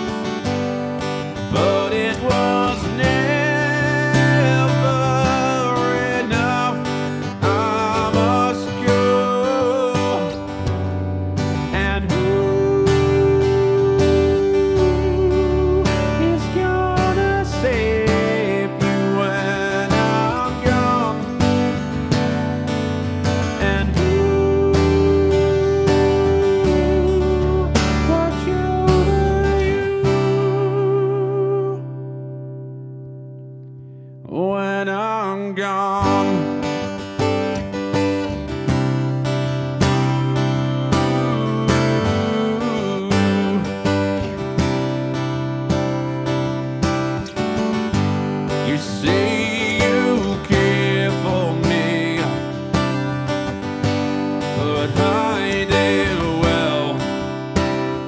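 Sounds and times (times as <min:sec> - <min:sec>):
man singing slow ballad: 0:00.0 - 0:32.2, 0:34.2 - 0:38.3, 0:39.8 - 0:44.9, 0:47.0 - 0:58.0
strummed acoustic guitar: 0:00.0 - 0:58.0.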